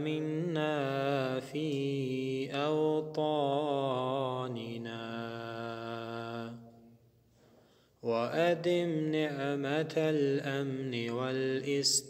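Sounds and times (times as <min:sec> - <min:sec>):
man chanting melodically: 0:08.1 - 0:12.0.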